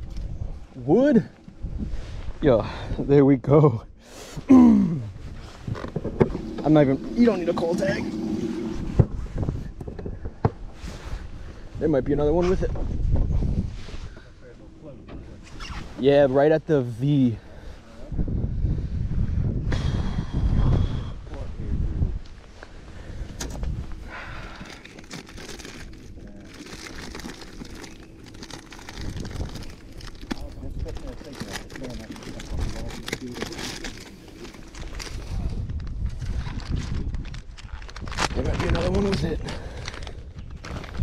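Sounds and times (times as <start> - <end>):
wind rumble on microphone: 0.0 - 3.2, 4.9 - 16.0, 17.3 - 41.0
plastic bags crinkling: 24.4 - 35.2, 36.5 - 41.0.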